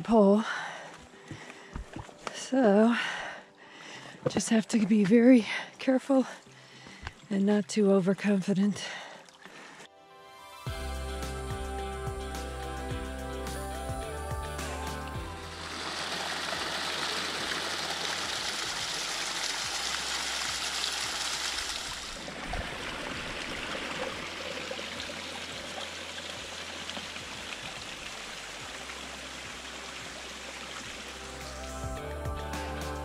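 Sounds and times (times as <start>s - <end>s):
background music: 0.0s - 8.8s, 9.6s - 21.2s, 23.7s - 33.0s
stream rushing over rocks: 15.5s - 31.7s.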